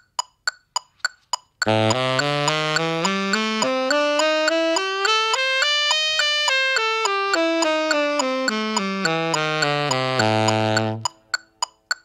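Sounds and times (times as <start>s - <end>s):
metronome clicking: 0.0s - 12.0s
tenor saxophone playing a scale: 1.6s - 11.6s.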